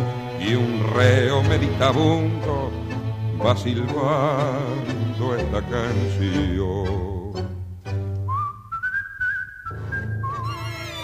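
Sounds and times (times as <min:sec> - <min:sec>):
orchestra playing: 0:00.0 - 0:08.2, 0:10.2 - 0:11.0
person whistling a melody: 0:08.2 - 0:10.7.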